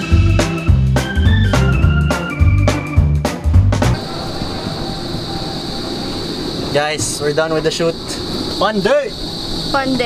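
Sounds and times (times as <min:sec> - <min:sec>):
low rumble: 0:03.7 - 0:08.5
steady high-pitched tone: 0:04.0 - 0:10.0.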